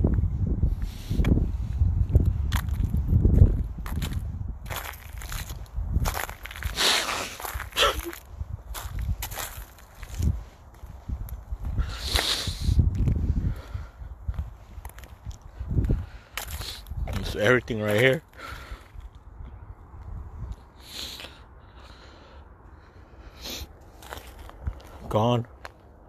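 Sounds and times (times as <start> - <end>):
footsteps on rubble: 2.5 - 6.8, 7.4 - 11.8, 14.3 - 19.3, 23.8 - 25.9.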